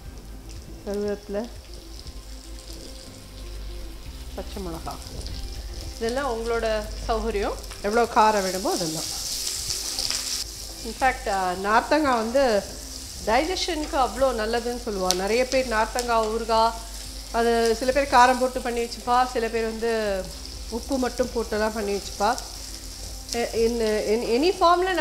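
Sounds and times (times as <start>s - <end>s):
food sizzling in oil: 0.0s - 25.0s
woman talking: 0.9s - 1.5s, 4.4s - 5.2s, 6.0s - 9.1s, 10.8s - 16.8s, 17.4s - 22.4s, 23.4s - 25.0s.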